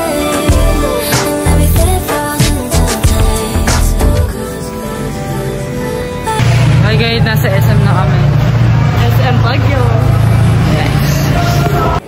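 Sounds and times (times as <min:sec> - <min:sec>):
loud low hum: 0:06.4 - 0:12.0
people talking: 0:06.7 - 0:12.0.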